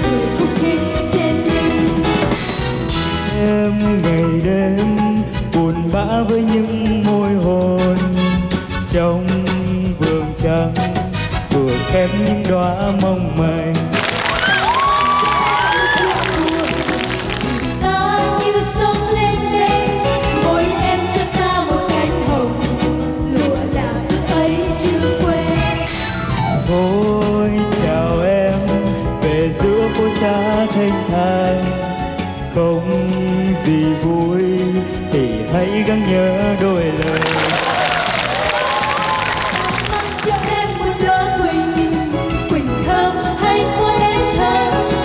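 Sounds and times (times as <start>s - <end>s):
women singing pop ballad: 0.0s - 2.4s, 14.6s - 26.2s, 38.0s - 45.0s
person singing: 0.0s - 45.0s
pop backing track: 0.0s - 45.0s.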